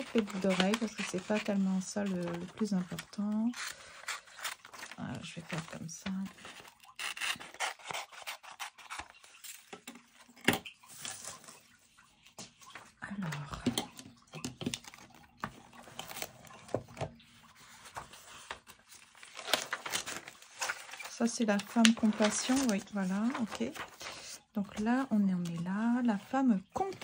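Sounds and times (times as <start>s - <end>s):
paper rustling and crinkling: 0.0s - 13.7s, 14.4s - 27.0s
notebook pages leafed through: 15.5s - 26.3s.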